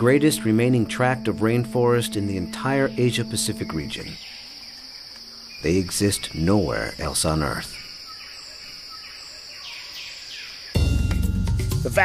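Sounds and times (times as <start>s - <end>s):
bird calling: 0.0s - 10.8s
insect drone: 0.0s - 11.8s.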